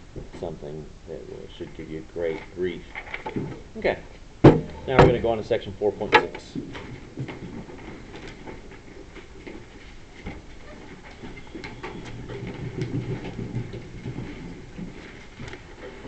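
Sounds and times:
shuffling and rustling: 0:01.5 - 0:16.0.

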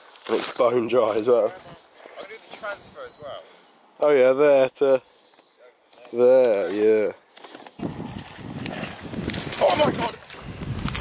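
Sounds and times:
bike tyres crackling over dirt: 0:00.0 - 0:02.8, 0:06.0 - 0:11.0.

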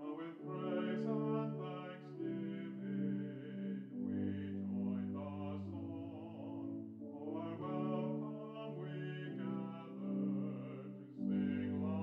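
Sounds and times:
organ playing hymn chords: 0:00.0 - 0:12.0.

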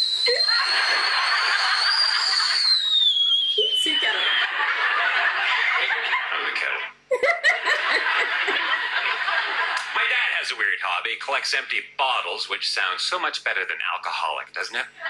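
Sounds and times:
woman laughing: 0:00.3 - 0:02.5, 0:03.6 - 0:06.2, 0:07.1 - 0:09.8
audience laughing: 0:00.3 - 0:02.8, 0:03.6 - 0:10.3
man speaking: 0:09.9 - 0:15.0.

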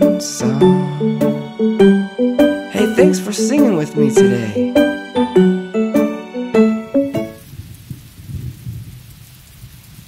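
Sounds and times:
steady rain: 0:06.5 - 0:10.0
rumble of thunder: 0:07.4 - 0:10.0.

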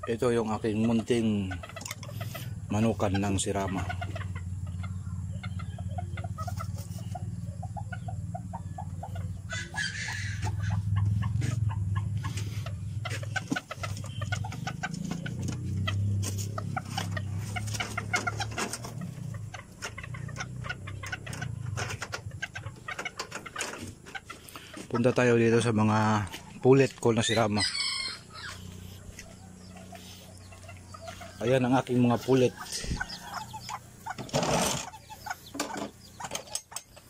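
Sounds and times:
chickens clucking: 0:00.0 - 0:37.0
steady low hum: 0:00.0 - 0:37.0.

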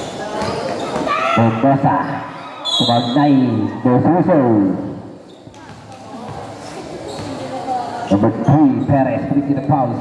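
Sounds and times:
basketball bouncing on concrete: 0:05.5 - 0:07.4.

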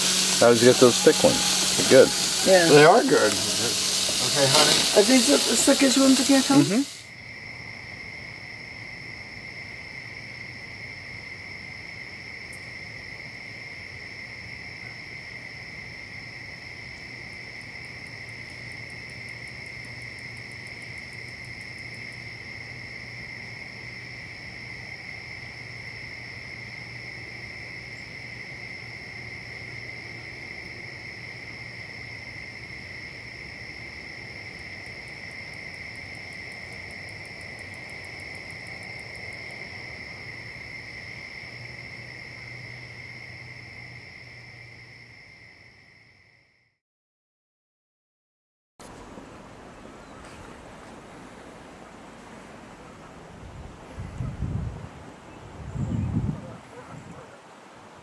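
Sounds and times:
crickets trilling: 0:00.0 - 0:46.7, 0:48.8 - 0:58.0
rapidly pulsing insect call: 0:00.0 - 0:46.8, 0:48.9 - 0:58.0.

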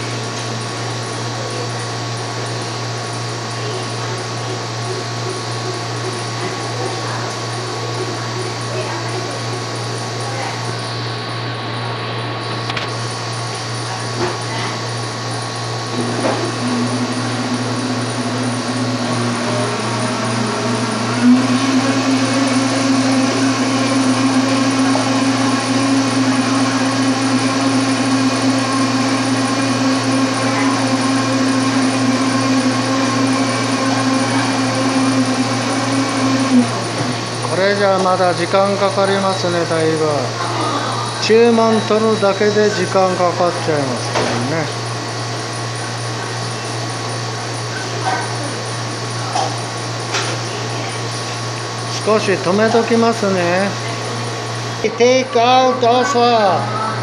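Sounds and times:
low hum of shop equipment: 0:00.0 - 0:57.0
electric motor humming: 0:15.3 - 0:45.1.

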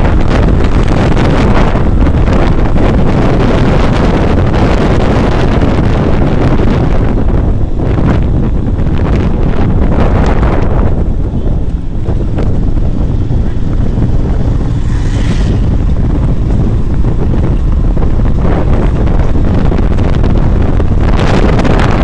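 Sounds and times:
motorcycle and road rumble: 0:00.0 - 0:22.0
wind buffeting microphone: 0:00.0 - 0:22.0.

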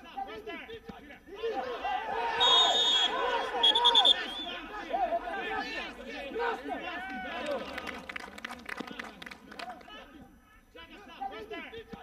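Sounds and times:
men shouting: 0:01.3 - 0:07.8
referee's whistle blasts: 0:02.3 - 0:04.7.

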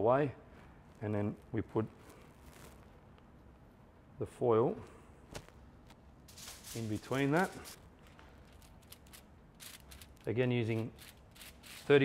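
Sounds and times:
faint rustling of foil: 0:00.5 - 0:03.6, 0:05.4 - 0:12.0.

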